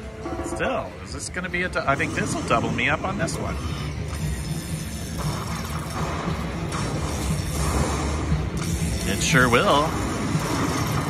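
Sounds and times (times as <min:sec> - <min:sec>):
slot machine win music: 0:00.0 - 0:11.0.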